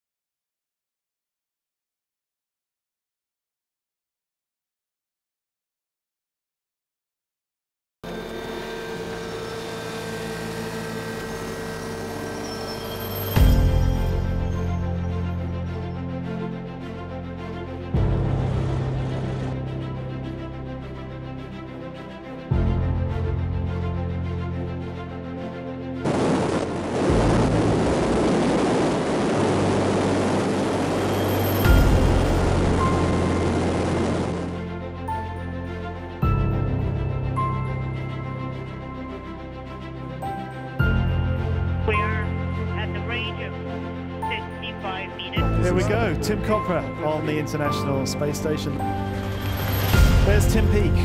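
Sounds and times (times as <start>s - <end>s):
droning hum with held tones: 8.1s - 12.9s
background music: 9.7s - 51.0s
rocket engines roaring: 26.1s - 34.6s
low rumble: 26.1s - 34.8s.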